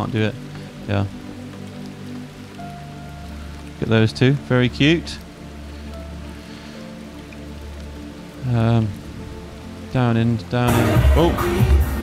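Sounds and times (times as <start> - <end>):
flowing stream: 0.0 - 12.0.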